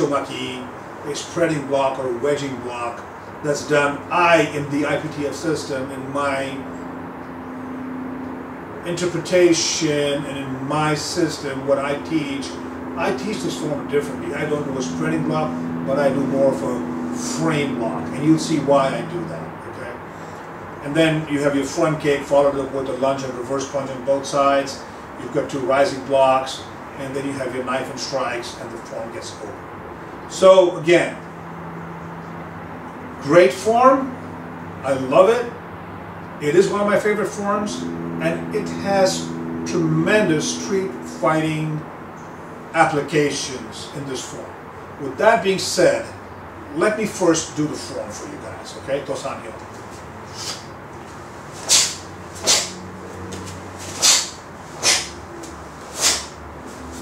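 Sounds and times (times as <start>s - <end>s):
low hum: 2.5s - 21.3s, 35.5s - 43.6s, 47.7s - 57.0s
clothing swishes from strikes: 49.8s - 57.0s.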